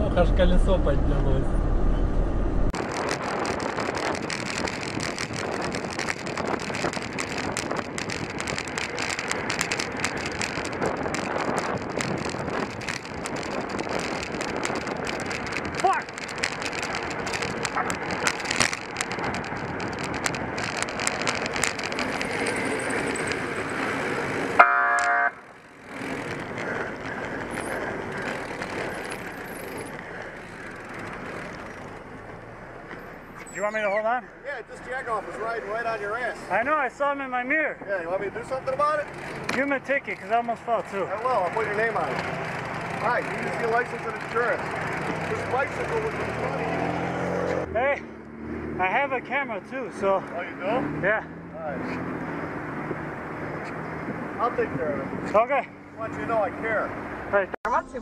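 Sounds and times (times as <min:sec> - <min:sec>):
traffic noise: 0:00.0 - 0:58.0
wind: 0:00.0 - 0:58.0
horn blast: 0:24.6 - 0:25.4.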